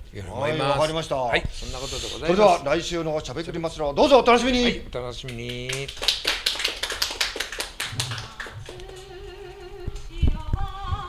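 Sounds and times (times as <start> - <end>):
people clapping: 5.2 - 9.4.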